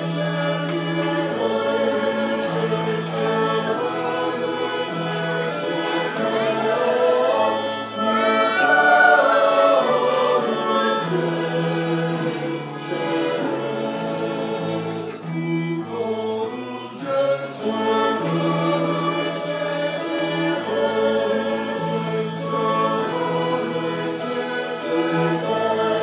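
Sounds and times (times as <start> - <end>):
flute: 0.0 - 13.7
choir singing a hymn: 0.0 - 26.0
keyboard: 0.0 - 26.0
violins: 0.0 - 26.0.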